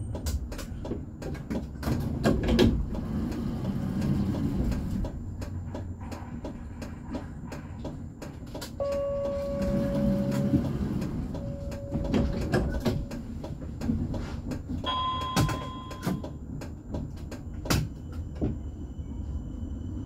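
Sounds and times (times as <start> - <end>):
tram hum: 0.0 - 20.0.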